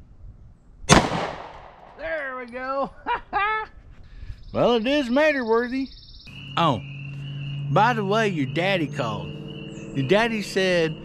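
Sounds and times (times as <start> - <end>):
pistol shot with echo: 0.9 - 2.0.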